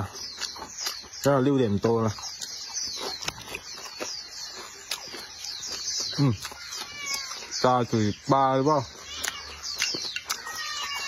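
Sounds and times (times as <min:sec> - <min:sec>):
chewing food: 0:00.0 - 0:11.0
wet mouth clicks: 0:02.2 - 0:07.4, 0:09.1 - 0:11.0.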